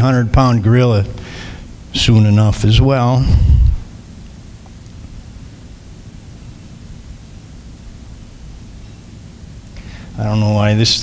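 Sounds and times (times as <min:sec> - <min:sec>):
steady hiss: 0:00.0 - 0:11.0
low rumble: 0:03.2 - 0:03.9.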